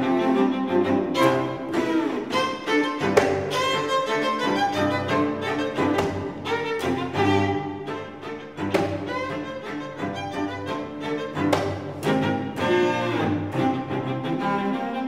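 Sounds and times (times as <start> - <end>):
viola and cello playing: 0.0 - 15.0.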